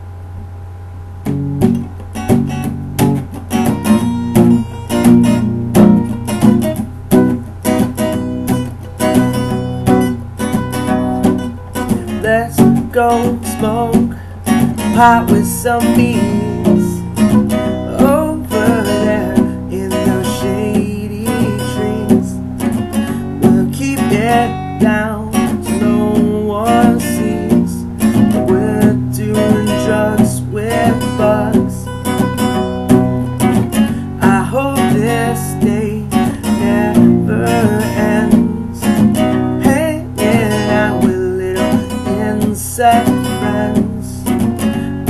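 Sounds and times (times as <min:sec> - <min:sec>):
acoustic guitar strumming: 0:00.0 - 0:45.0
man singing: 0:11.9 - 0:22.4, 0:23.1 - 0:32.0, 0:33.7 - 0:44.4.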